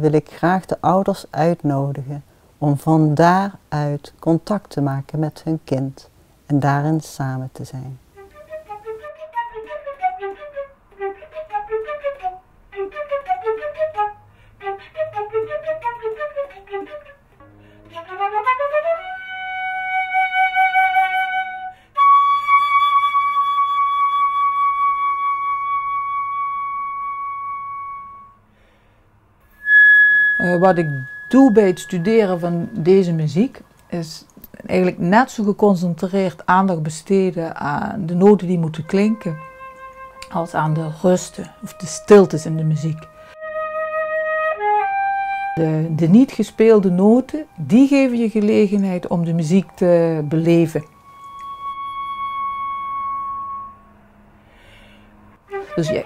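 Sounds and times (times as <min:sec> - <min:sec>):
flute note: 0:29.5 - 0:33.2, 0:50.2 - 0:54.2.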